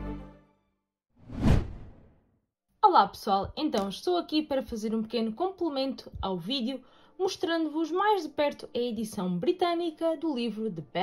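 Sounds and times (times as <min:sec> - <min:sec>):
whoosh transition effect: 0:01.2 - 0:02.1.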